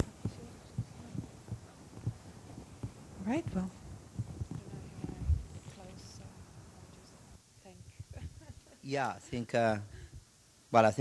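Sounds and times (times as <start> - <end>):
soft dull low thumps: 0.0 - 6.8.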